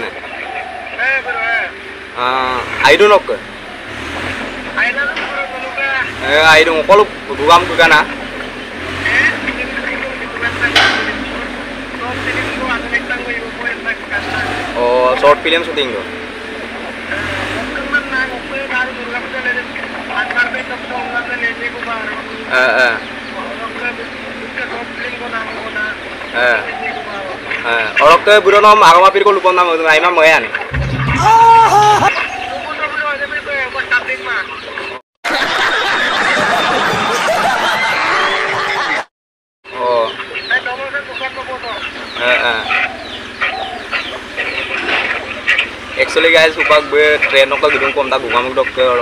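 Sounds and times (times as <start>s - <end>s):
chickens clucking: 0.0s - 35.0s, 39.7s - 49.0s
man talking on speakerphone: 4.8s - 8.1s, 9.0s - 16.1s, 17.1s - 30.8s, 32.6s - 34.8s, 39.7s - 45.2s, 45.9s - 49.0s
short loud burst: 30.7s - 32.1s.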